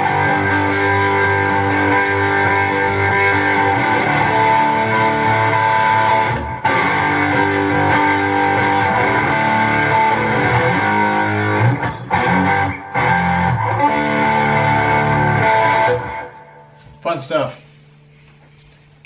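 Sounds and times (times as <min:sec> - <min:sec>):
electric guitar strumming chords: 0:00.0 - 0:17.2.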